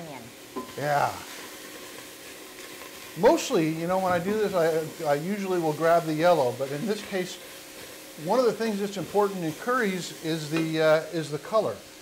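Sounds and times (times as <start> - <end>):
onion sizzling in a pot: 0.0 - 12.0
spatula stirring: 0.6 - 10.8.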